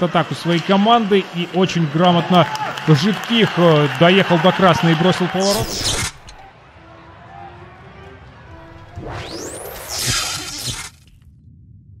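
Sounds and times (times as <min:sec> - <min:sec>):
rising whoosh: 0:08.6 - 0:12.0
glassy crash: 0:09.4 - 0:11.1.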